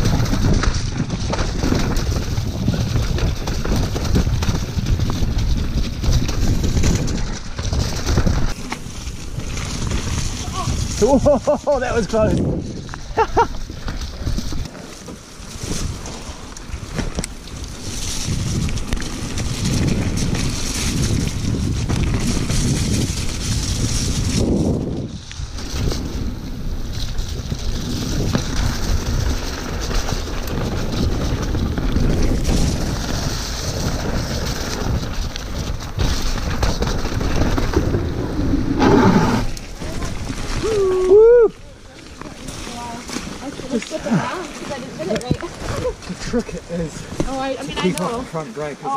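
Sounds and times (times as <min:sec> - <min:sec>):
mountain bike rumbling and rattling: 0:00.0 - 0:48.9
tyres running through mud: 0:00.0 - 0:48.9
wind buffeting microphone: 0:00.0 - 0:48.9.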